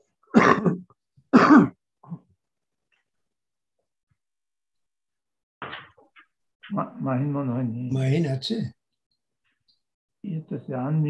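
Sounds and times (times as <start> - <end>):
man clearing throat: 0.3 - 2.2.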